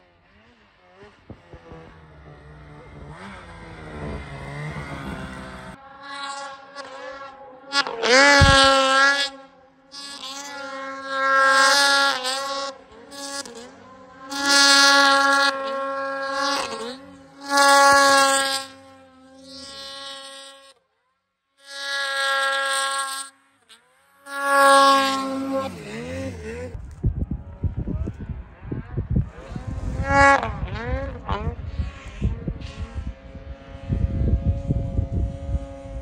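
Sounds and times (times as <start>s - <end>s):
snowmobile engines revving: 0.0s - 20.7s, 21.7s - 36.0s
wind noise on microphone: 8.3s - 8.8s, 26.7s - 36.0s.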